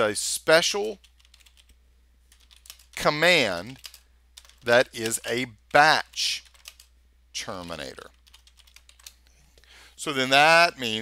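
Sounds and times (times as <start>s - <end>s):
low steady hum: 0.0s - 11.0s
keyboard typing: 0.8s - 3.0s, 3.7s - 6.9s, 8.0s - 9.4s.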